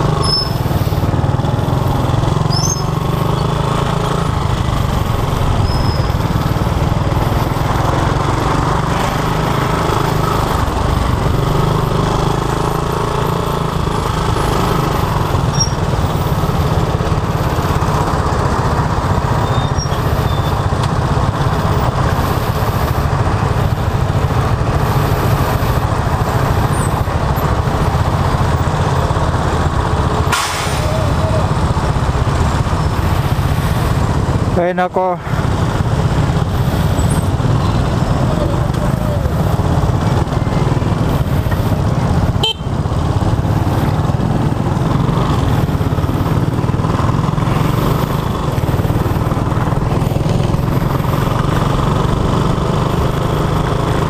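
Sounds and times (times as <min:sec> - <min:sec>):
motorcycle engine running: 0:00.0 - 0:54.0
surrounding traffic engines: 0:00.0 - 0:54.0.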